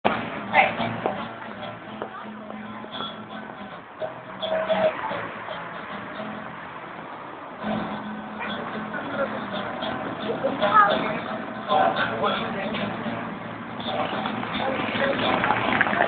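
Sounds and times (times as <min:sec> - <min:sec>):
blues guitar playing: 0:00.0 - 0:16.0
street voices: 0:00.0 - 0:16.0
traffic: 0:00.0 - 0:16.0.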